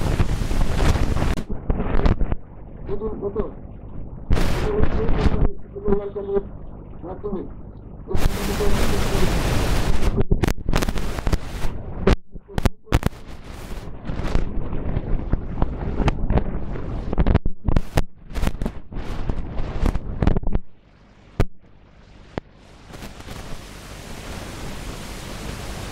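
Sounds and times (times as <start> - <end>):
steady hiss: 0.0 - 3.6, 4.3 - 6.5, 8.1 - 15.1, 20.8 - 25.9.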